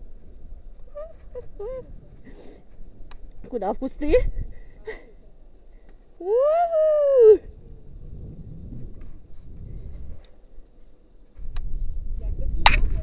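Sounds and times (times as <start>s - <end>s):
low rumbling on microphone: 0.0s - 3.2s, 3.9s - 13.0s
woman's high-pitched wail: 6.2s - 7.5s.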